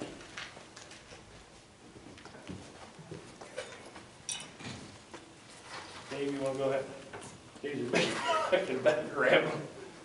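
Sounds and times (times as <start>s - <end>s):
faint footsteps and knocks: 0.0s - 7.6s.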